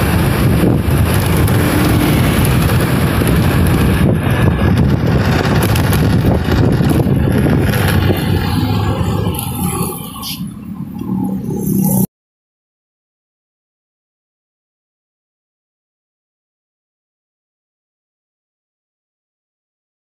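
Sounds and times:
motorbikes and cars passing: 0.0s - 12.1s.

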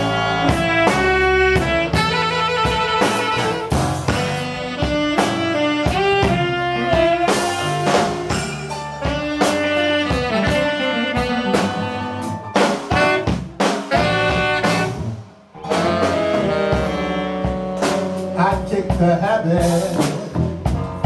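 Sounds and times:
saxophones playing: 0.0s - 18.9s
drum kit beat: 0.0s - 21.0s.

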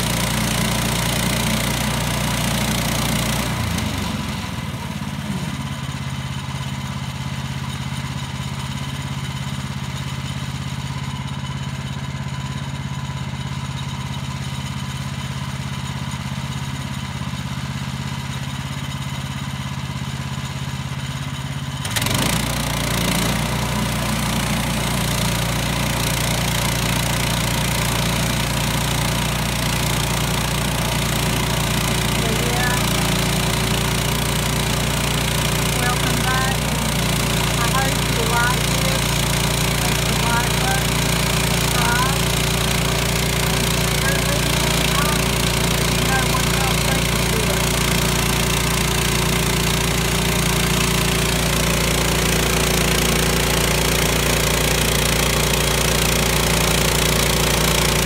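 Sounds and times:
gasoline engine running: 0.0s - 58.0s.

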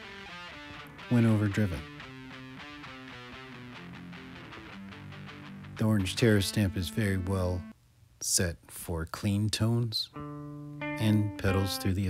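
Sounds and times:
electric guitar picked notes: 0.0s - 7.7s, 10.2s - 12.0s.

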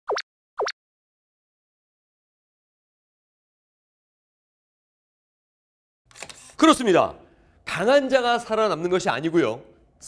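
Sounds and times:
bloop sound effects: 0.1s - 0.8s.

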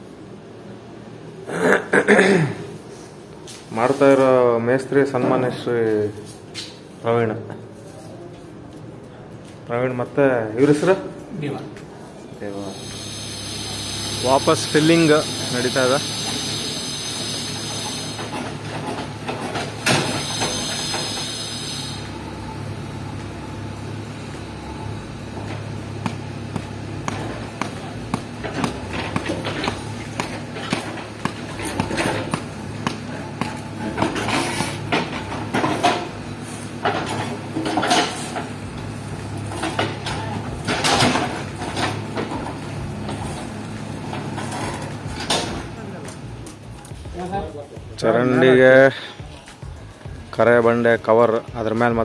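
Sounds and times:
diesel engine running: 12.5s - 52.0s
high hiss: 12.6s - 18.3s, 20.0s - 22.3s.

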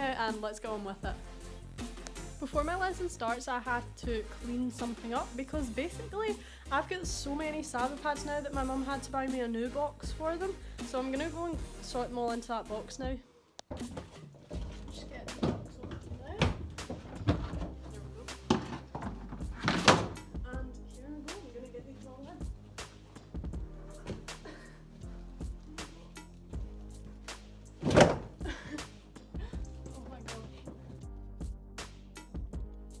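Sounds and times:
background music with a beat: 0.0s - 33.0s
dull thunks: 27.8s - 28.6s.

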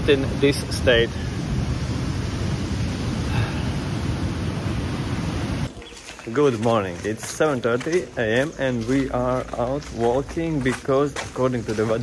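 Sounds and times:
surf rushing on beach: 0.0s - 5.8s.

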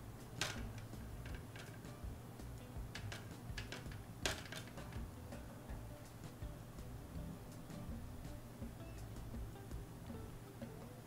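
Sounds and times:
faint background music: 0.0s - 11.0s.

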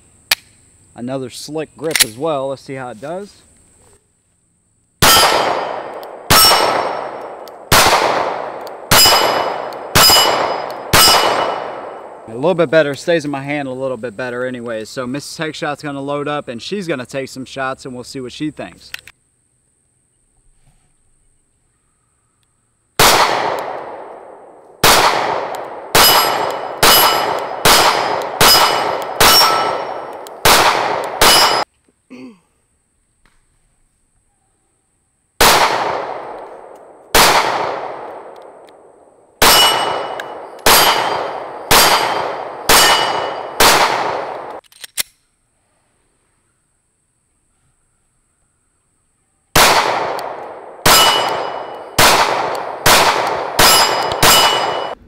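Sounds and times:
pistol shots: 5.0s - 12.2s, 23.0s - 31.7s, 35.4s - 38.8s, 39.4s - 44.6s, 49.6s - 55.0s.

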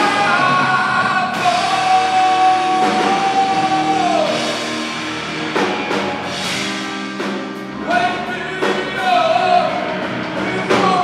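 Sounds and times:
person singing: 0.0s - 4.7s, 7.8s - 11.0s
bass guitar: 0.0s - 11.0s
drums: 0.0s - 11.0s
electric guitar: 0.0s - 11.0s.

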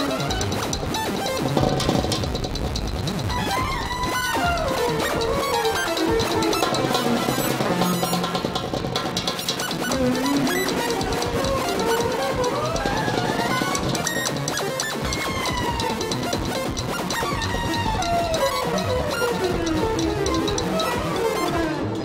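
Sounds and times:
effects-processed guitar melody: 0.0s - 22.0s
light clicking percussion: 0.0s - 22.0s.

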